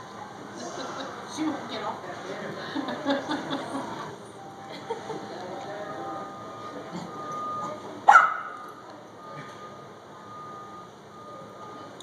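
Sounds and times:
faint high steady tone: 4.2 - 12.0
puppy barking: 8.1 - 8.6.

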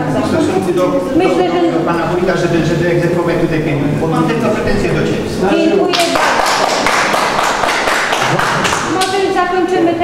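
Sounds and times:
audience applauding: 5.9 - 9.2.

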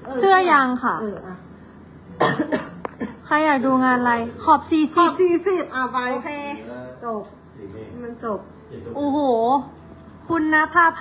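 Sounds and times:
woman coughing: 2.2 - 3.3.

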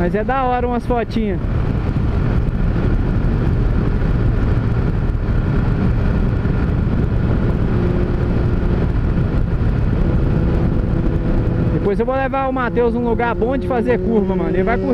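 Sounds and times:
motorcycle engine running: 0.0 - 14.9
wind rushing past helmet: 0.0 - 14.9.

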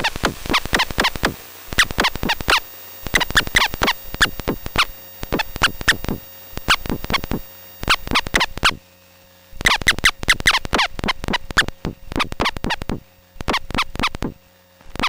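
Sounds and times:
falling electronic chirps: 0.0 - 8.8, 9.6 - 14.4.

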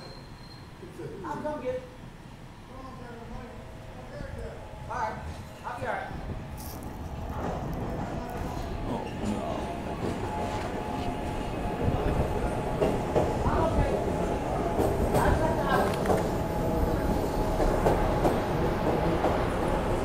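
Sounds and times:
train rumble: 0.7 - 20.0.

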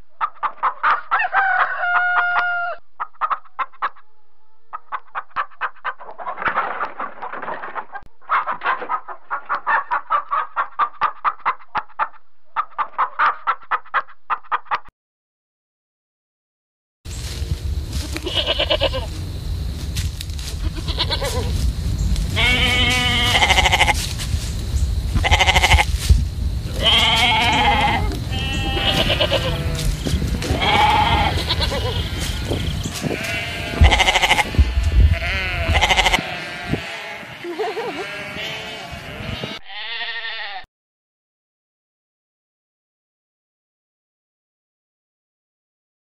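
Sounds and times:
steady low rumble: 17.1 - 36.2
sheep bleating: 18.0 - 19.2, 20.6 - 21.5, 22.4 - 24.0, 25.2 - 25.9, 26.7 - 40.7.

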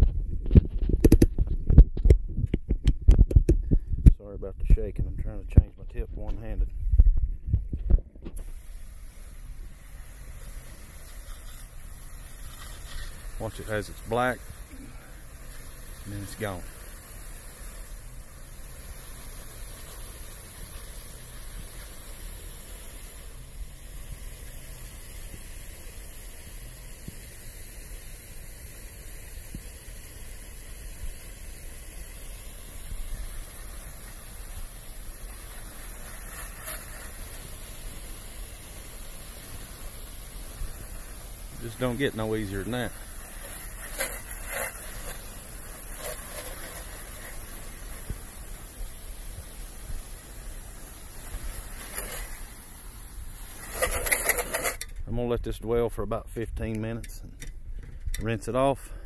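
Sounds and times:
wind rumble on microphone: 0.0 - 8.9
spray nozzle hissing: 8.3 - 54.8.

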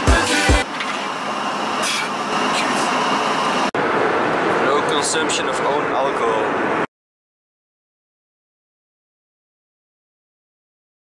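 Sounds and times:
music with steady beat: 0.0 - 0.6.

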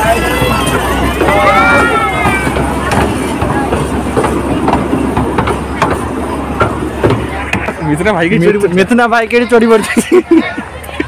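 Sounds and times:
toy train rumbling: 0.0 - 10.0
carriages clacking: 0.0 - 11.0.

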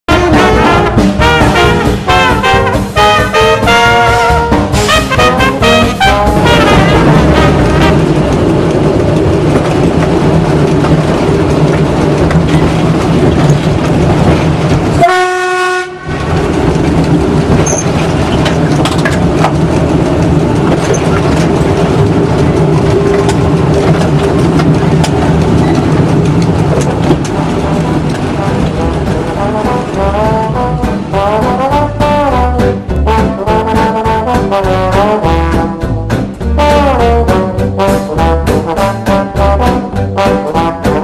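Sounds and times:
train wheels on rails rumbling: 0.0 - 41.0
horn-like tone: 0.1 - 8.1, 15.0 - 16.2
rail joint clicks: 4.0 - 41.0.

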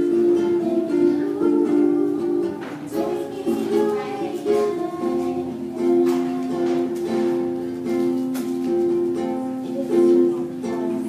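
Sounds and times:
woman singing slow song: 0.0 - 7.5, 9.4 - 11.0
ukulele accompaniment: 0.0 - 11.0.

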